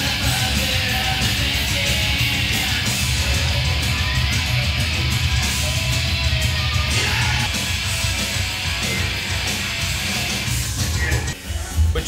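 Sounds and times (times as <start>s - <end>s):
loud rock music with guitar: 0.0s - 11.4s.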